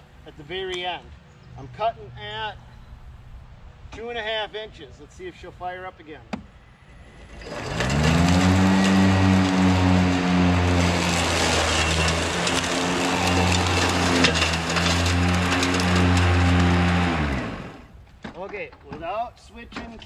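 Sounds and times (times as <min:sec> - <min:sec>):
electric mower blade motors whining: 0:07.0 - 0:18.0
debris ticking: 0:10.6 - 0:17.2.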